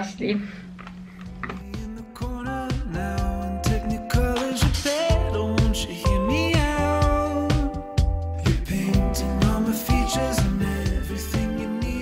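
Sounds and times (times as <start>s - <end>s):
music with beat and bass line: 1.3s - 12.0s.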